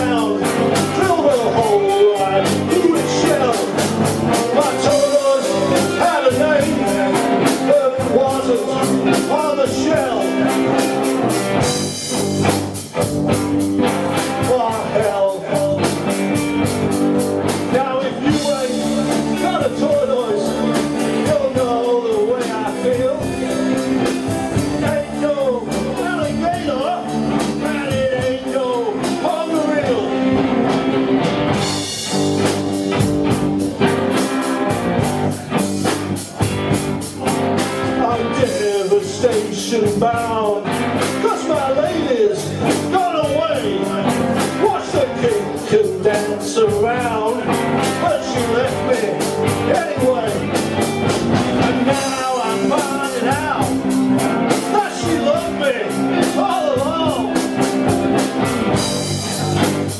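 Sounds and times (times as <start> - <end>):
man singing: 0.0 - 12.2, 14.1 - 16.5, 17.4 - 31.1, 37.2 - 59.7
live rock band playing: 0.0 - 59.9.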